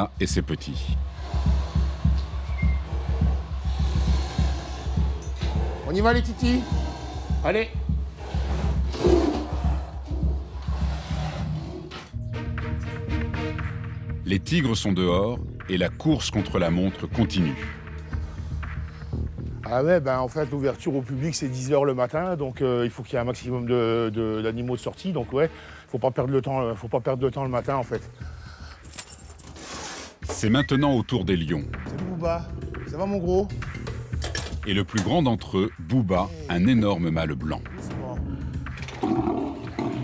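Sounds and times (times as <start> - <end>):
tigers growling: 1.0 - 12.1, 38.2 - 40.0
keys jangling: 28.8 - 29.6.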